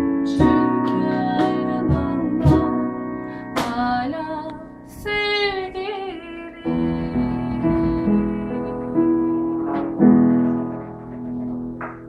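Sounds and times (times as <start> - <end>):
piano chords: 0.0 - 12.0
woman singing: 0.1 - 9.6.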